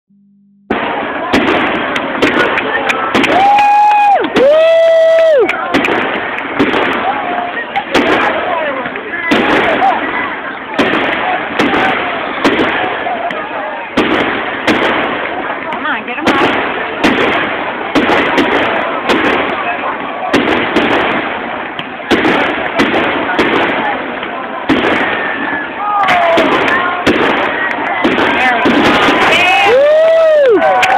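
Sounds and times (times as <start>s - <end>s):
crowd voices: 0.7s - 30.9s
dense steady rush of noise: 0.7s - 30.9s
fireworks bursting with sharp bangs: 0.7s - 30.9s.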